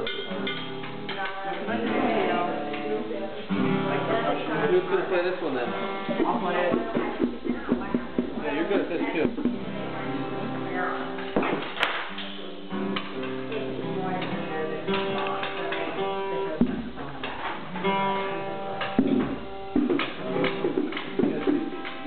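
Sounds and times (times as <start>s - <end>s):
live amateur music: 0.0s - 22.0s.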